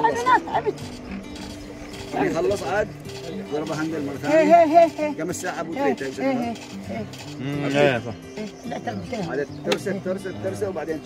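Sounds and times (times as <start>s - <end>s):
voices: 0.0s - 11.0s
gramophone ratchet clicking: 0.6s - 7.4s.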